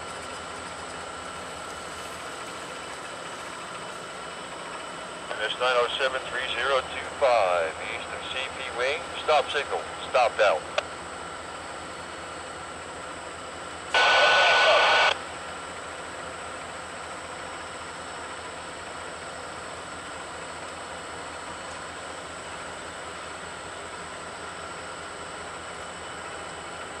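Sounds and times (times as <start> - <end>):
low noise from stopped train: 0.0 - 27.0
radio static burst with tone: 14.0 - 15.2.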